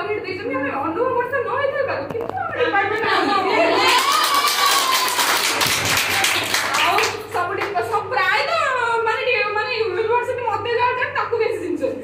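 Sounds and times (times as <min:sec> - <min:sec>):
people talking: 0:00.0 - 0:04.4, 0:06.0 - 0:12.0
group clapping: 0:03.6 - 0:07.9.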